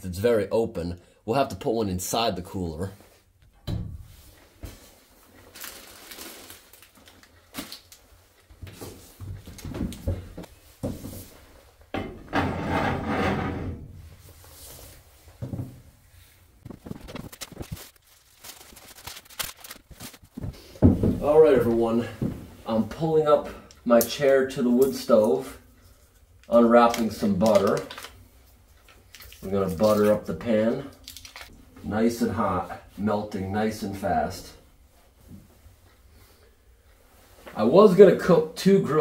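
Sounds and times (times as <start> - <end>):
objects knocking and rustling: 8.4 - 15.9, 16.6 - 18.0, 18.7 - 22.6
scraping or creaking: 12.0 - 14.3.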